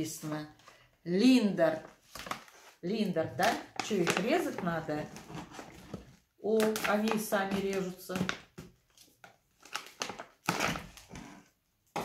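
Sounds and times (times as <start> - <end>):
plastic foil bag crinkling: 9.6 - 11.1.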